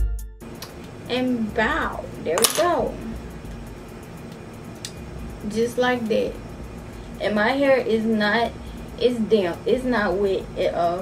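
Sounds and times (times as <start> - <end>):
woman speaking: 1.1 - 3.2, 5.4 - 6.4, 7.2 - 11.0.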